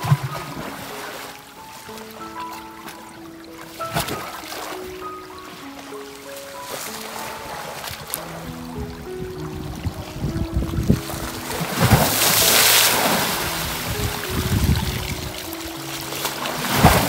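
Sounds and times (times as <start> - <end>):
lake waves splashing under ice: 0.0 - 17.0
soft background music: 0.0 - 17.0.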